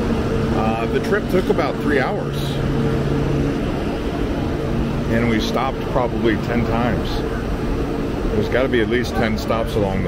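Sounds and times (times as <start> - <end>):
low tone: 0.0 - 10.0
train mechanical hum: 0.0 - 10.0.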